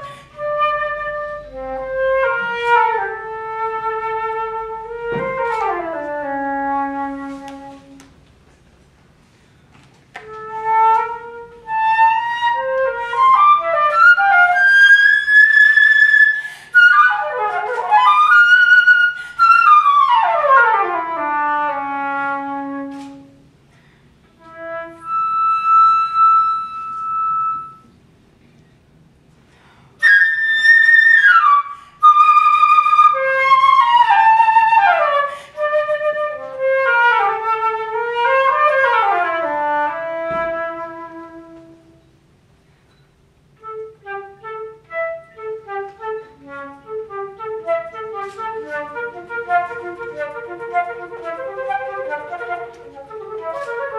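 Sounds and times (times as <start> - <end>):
flute playing fast runs: 10.2 - 23.1, 24.5 - 27.9, 30.0 - 41.9, 43.6 - 53.9.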